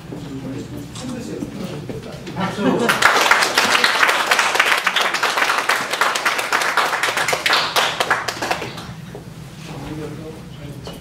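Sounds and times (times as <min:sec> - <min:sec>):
people clapping: 0:02.7 - 0:09.0.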